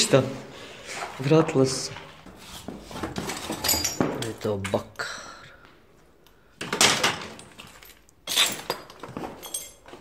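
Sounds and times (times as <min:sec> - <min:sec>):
glassy clinks: 0:07.7 - 0:10.0.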